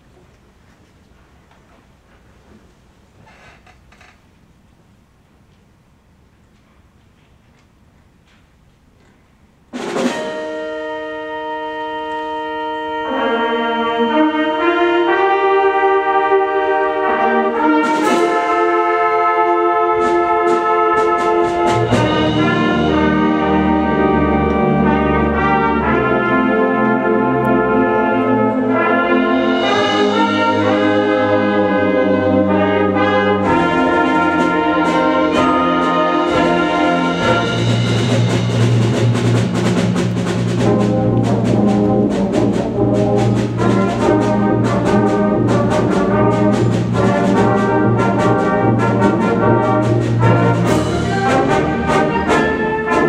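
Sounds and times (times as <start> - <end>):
concert band playing: 9.7 - 53.0
held brass chords: 9.8 - 53.0.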